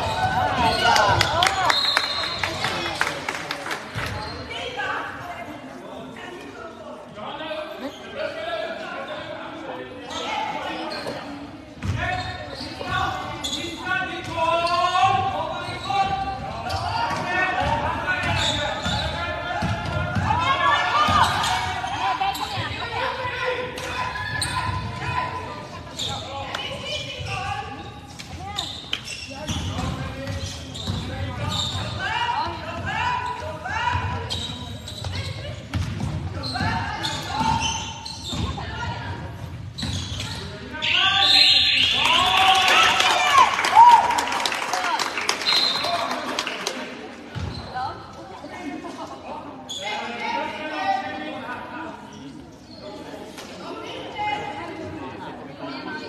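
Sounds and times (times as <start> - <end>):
voices and calls: 39.8 - 44.0.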